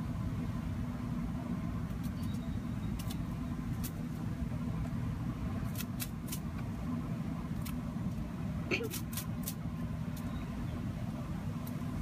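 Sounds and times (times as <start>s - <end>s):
distant road traffic rumble: 0.0s - 12.0s.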